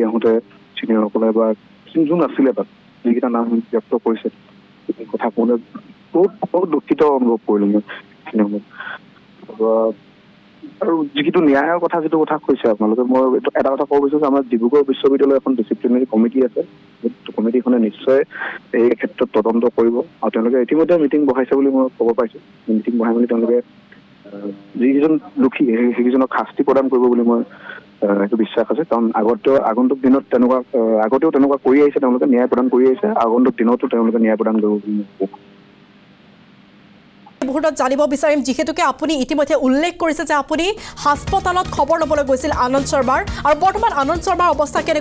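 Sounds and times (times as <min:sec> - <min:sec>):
man speaking over telephone: 0:00.0 - 0:10.0, 0:10.6 - 0:23.6, 0:24.3 - 0:35.4.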